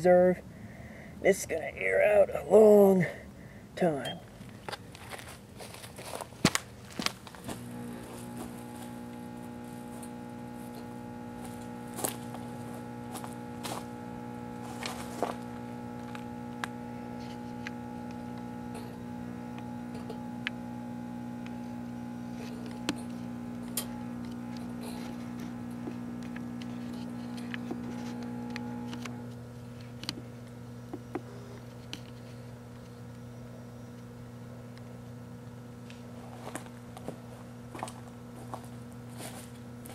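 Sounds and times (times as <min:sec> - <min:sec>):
microwave oven humming: 0:02.0 - 0:39.9.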